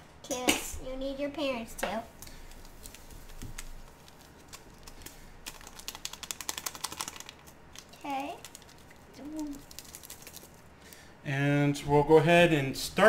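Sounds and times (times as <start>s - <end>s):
yeast packet ticks and crinkles: 2.2s - 11.0s.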